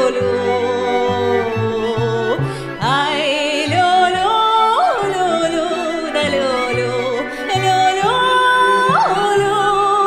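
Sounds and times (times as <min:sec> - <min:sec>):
woman singing slow melody: 0:00.0 - 0:10.0.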